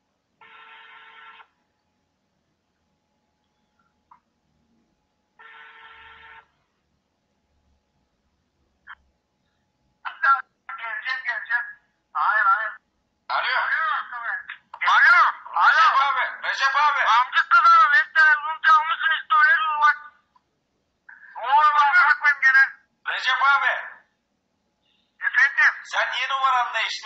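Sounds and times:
tinny voice over phone speaker: 10.1s - 20.2s, 21.1s - 24.0s, 25.2s - 27.0s.

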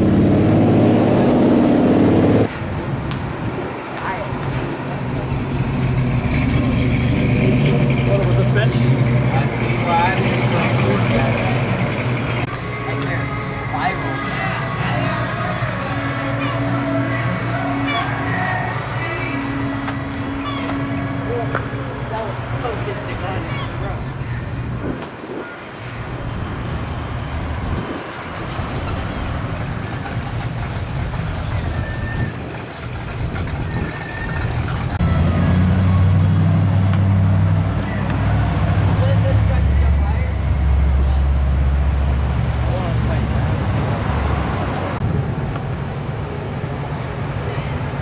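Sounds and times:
car engine rumbling past: 4.6s - 12.5s, 25.9s - 48.0s
music playing: 7.6s - 26.2s.

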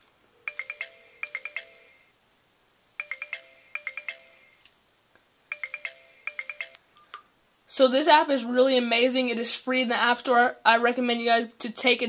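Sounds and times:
melodic chiming ringtone: 0.5s - 2.1s, 3.0s - 4.6s, 5.5s - 6.9s.

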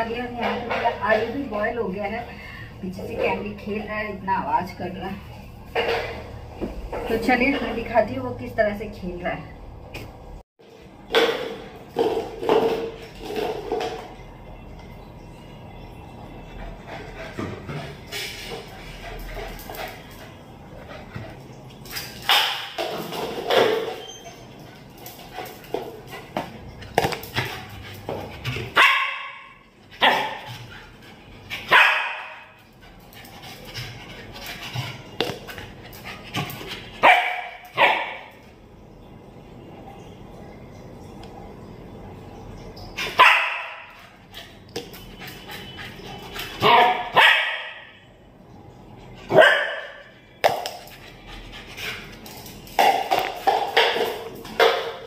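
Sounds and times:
dog barking: 28.8s - 30.4s, 31.7s - 32.5s, 37.0s - 38.3s, 43.2s - 43.9s, 46.6s - 48.0s, 49.3s - 50.0s.

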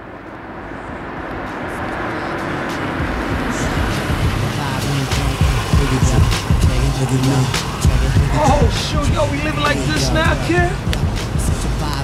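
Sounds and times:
car running: 0.0s - 12.0s
road and street noise: 0.0s - 12.0s.

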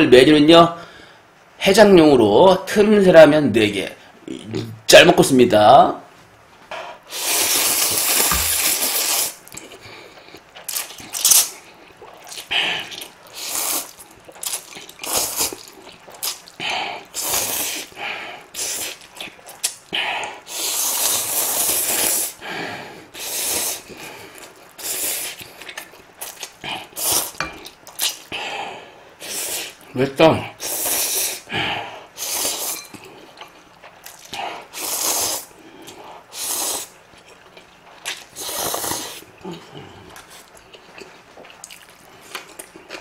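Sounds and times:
man slurping noodles: 7.1s - 9.7s, 20.2s - 22.4s, 34.4s - 35.6s, 36.3s - 36.9s, 38.3s - 40.4s.

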